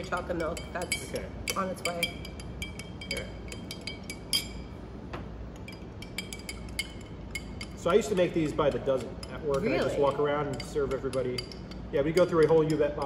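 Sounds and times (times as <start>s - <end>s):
spoon clinking against glass: 0.0s - 4.8s, 5.6s - 13.0s.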